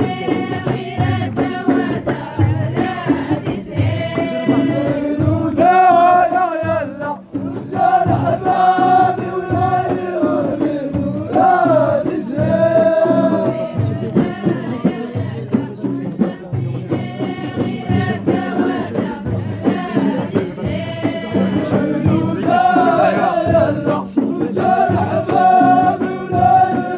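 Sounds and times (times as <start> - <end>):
chorus chanting long held notes: 0.0 - 15.4, 16.4 - 26.9
low repeating beat: 0.0 - 26.9.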